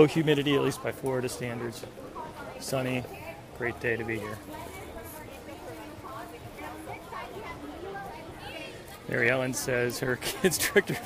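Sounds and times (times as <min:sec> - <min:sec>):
distant crowd chatter: 0:00.0 - 0:11.0.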